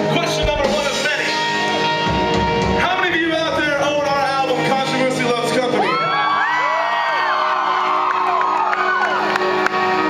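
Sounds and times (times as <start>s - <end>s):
live rock band: 0.0s - 6.5s, 7.8s - 10.0s
audience whooping and screaming: 5.7s - 10.0s.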